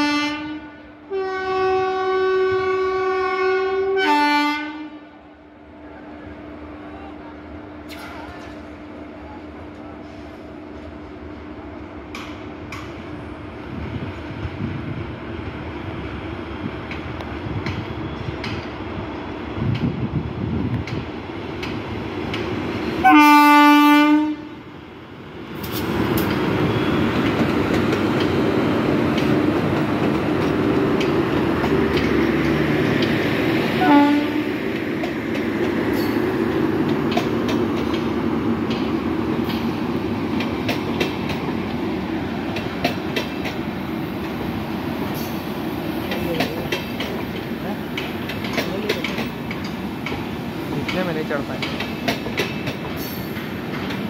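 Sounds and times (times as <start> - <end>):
locomotive horn: 0.0 - 5.2, 23.0 - 24.6, 33.8 - 34.6
train wheels rumbling: 5.8 - 54.0
wheels clicking over rail joints: 20.7 - 22.6, 27.2 - 33.3, 34.7 - 41.8, 42.5 - 44.4, 46.0 - 54.0.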